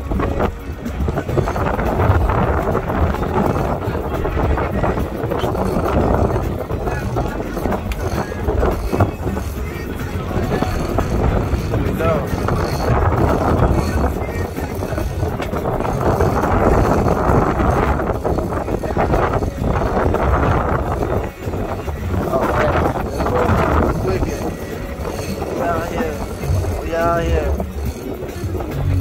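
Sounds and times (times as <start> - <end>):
boat engine running: 0.0 - 29.0
indistinct voices: 0.0 - 29.0
sea: 0.0 - 29.0
wind on microphone: 0.0 - 29.0.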